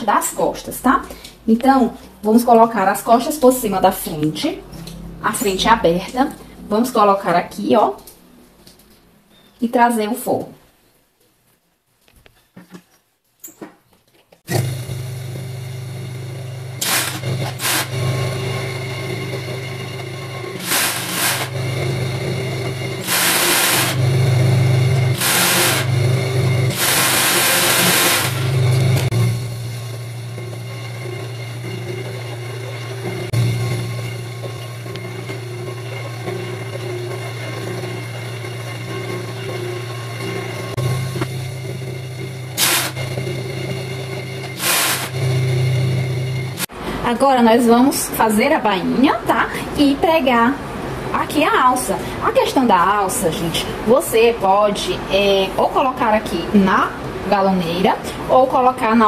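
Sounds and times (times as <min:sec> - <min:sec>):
sewing machine motor humming: 0:14.5 - 0:46.7
sewing machine stitching: 0:16.8 - 0:18.6, 0:20.5 - 0:29.2, 0:42.6 - 0:43.2, 0:44.4 - 0:45.4.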